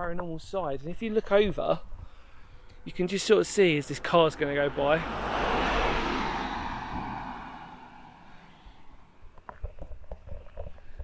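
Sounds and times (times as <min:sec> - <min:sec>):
car passing: 0:02.2 - 0:09.3.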